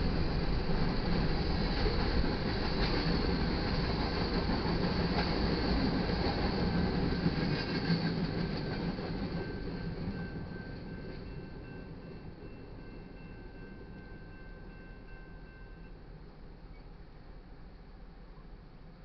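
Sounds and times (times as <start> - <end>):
train wheels clicking: 0.0 - 14.2
freight train rumbling on rails: 0.0 - 19.0.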